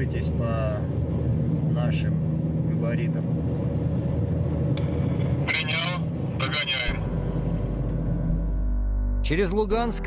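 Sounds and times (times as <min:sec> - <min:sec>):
car engine and road noise: 0:00.0 - 0:10.0
low sustained music tone: 0:06.7 - 0:10.0.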